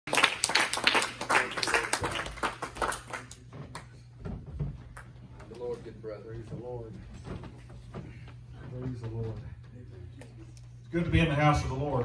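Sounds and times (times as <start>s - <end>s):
people clapping: 0.1s - 4.1s, 4.9s - 5.6s.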